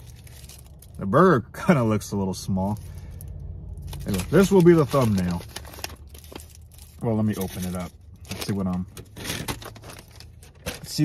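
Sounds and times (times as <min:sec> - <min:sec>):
paper wrapping crinkling and tearing: 0:00.0 - 0:01.1, 0:03.8 - 0:11.0.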